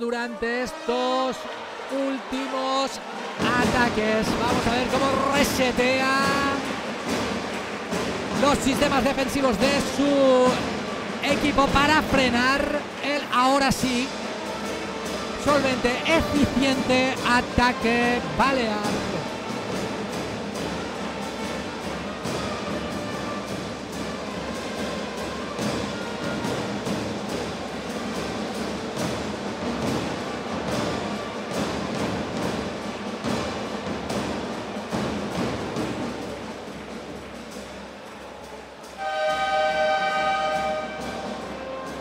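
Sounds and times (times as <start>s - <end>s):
buzzer horn blast: 39.0s - 42.0s.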